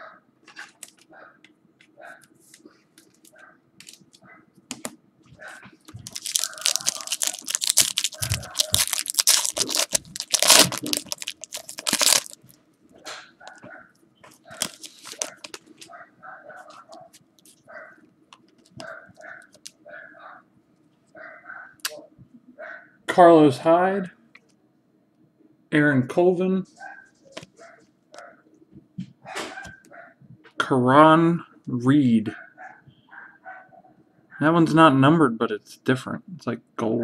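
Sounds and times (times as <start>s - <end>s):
foil wrapper tearing and crinkling: 5.9s - 12.6s, 14.4s - 15.9s, 18.5s - 19.8s.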